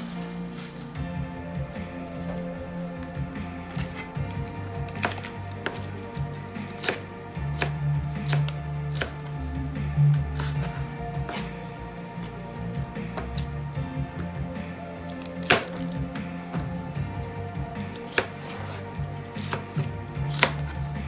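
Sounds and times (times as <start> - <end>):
background music with low notes: 0.0 - 21.0
knife chopping cabbage on board: 4.9 - 7.0, 18.0 - 18.8, 19.4 - 20.8.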